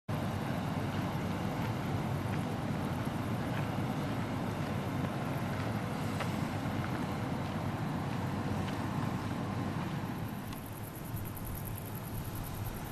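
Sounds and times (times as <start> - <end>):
faint ticks: 9.8 - 12.9.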